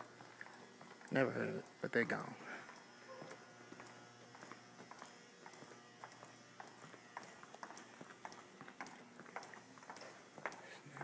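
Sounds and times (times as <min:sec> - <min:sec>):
footsteps on tiled floor: 0:00.0 - 0:01.2, 0:02.6 - 0:11.0.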